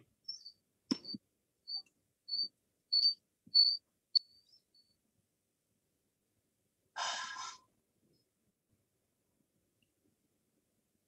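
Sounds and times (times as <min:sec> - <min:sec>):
small bird chirping: 0:00.2 - 0:05.0.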